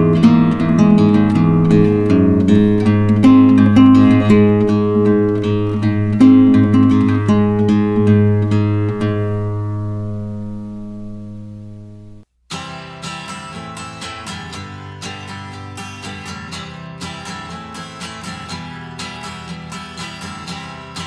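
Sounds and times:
acoustic guitar music: 0:00.0 - 0:21.0.

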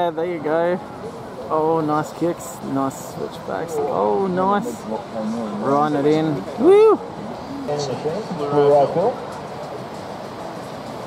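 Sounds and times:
steady background rush: 0:00.0 - 0:11.0.

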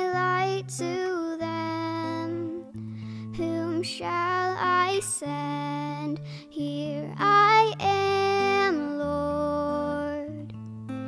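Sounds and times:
girl singing a hymn: 0:00.0 - 0:10.5
acoustic guitar chords: 0:00.0 - 0:11.0.

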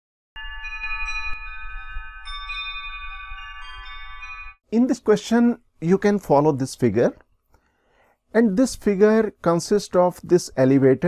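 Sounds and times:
shimmering chime tones: 0:00.4 - 0:04.6.

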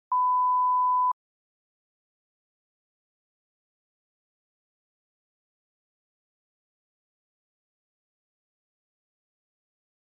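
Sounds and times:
pure-tone beep: 0:00.1 - 0:01.2.

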